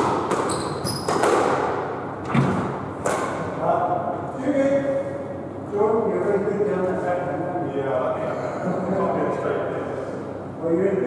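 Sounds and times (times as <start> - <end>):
squash ball thuds: 0.0 - 3.4.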